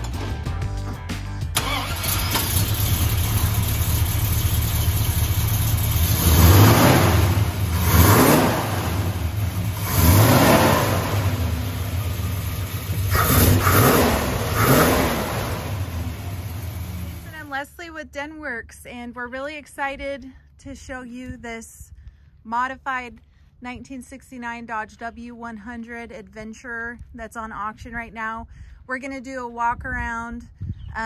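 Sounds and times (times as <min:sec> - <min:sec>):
car engine idling and revving: 0:00.0 - 0:17.5.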